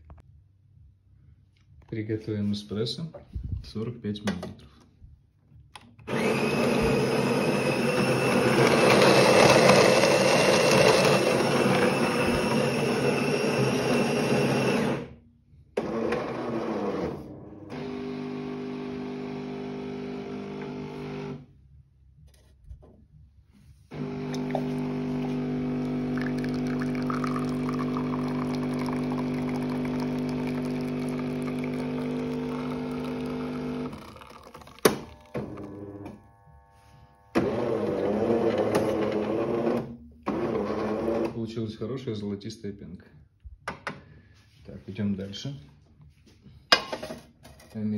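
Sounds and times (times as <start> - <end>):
coffee machine grinding beans: 6.1 - 15.1, 15.8 - 21.4, 23.9 - 36.6, 37.2 - 41.4
espresso pouring: 6.2 - 15.0, 23.9 - 35.9
pump humming: 23.9 - 37.7.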